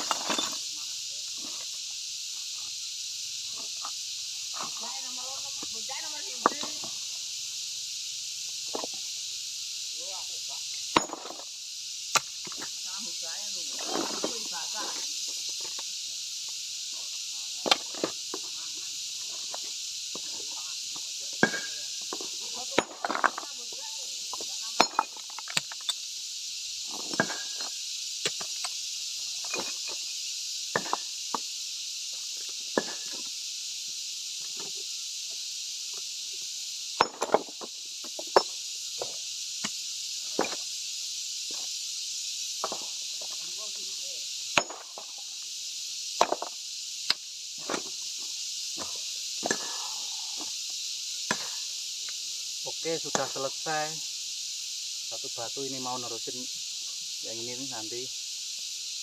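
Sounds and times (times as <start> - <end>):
steady high hiss: 0.0 - 59.0
stone slabs knocking together: 21.4 - 21.8, 46.2 - 46.5.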